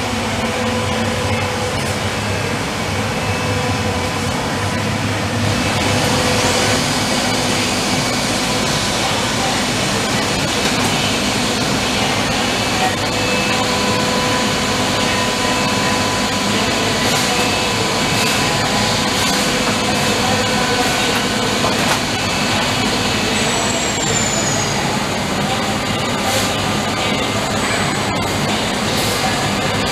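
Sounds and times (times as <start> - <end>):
machines running: 0.0 - 29.9
thin high machine whine: 0.0 - 29.9.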